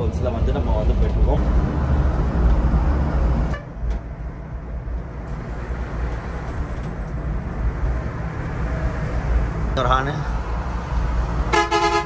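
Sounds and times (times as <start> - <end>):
engine and road rumble: 0.0 - 12.0.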